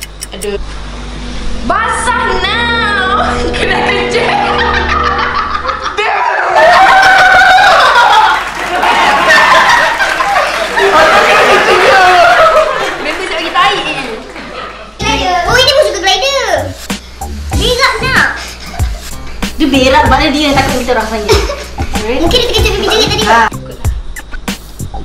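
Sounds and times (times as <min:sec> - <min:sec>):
background music: 0:02.0 - 0:06.0, 0:16.6 - 0:25.0
loud burst of laughter: 0:04.5 - 0:13.2.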